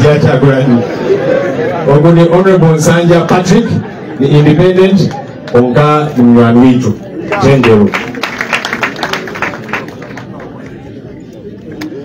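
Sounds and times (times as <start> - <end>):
group hand clapping: 7.3 - 10.7.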